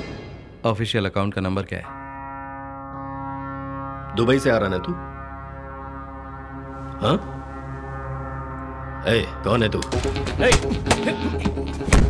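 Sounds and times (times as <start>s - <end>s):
low brass-like drone: 1.9s - 10.4s.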